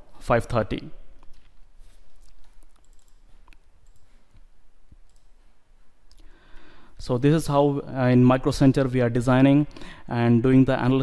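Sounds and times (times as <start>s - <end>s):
computer mouse clicks: 2.2s - 5.4s.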